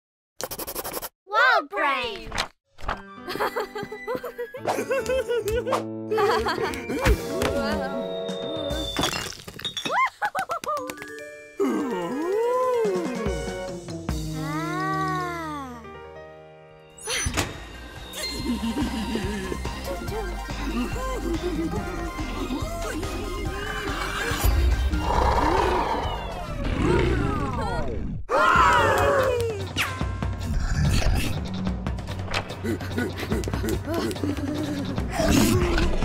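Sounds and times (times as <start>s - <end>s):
bouncy cartoon music: 2.9s - 9.0s, 10.3s - 16.1s, 17.3s - 25.2s.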